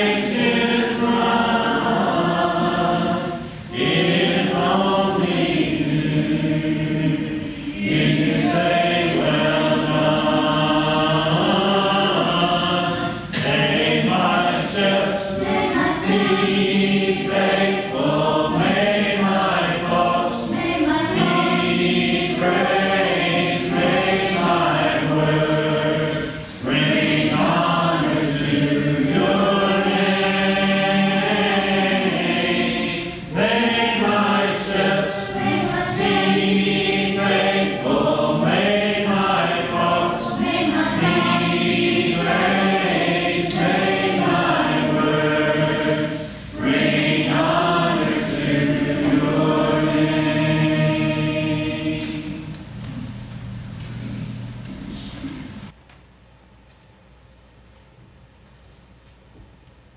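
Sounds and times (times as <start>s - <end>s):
congregation singing a hymn: 0.0s - 55.7s.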